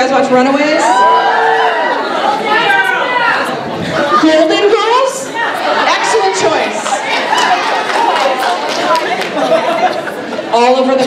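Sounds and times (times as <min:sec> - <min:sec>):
people talking at once: 0:00.0 - 0:11.0
audience calling out replies: 0:00.7 - 0:10.1.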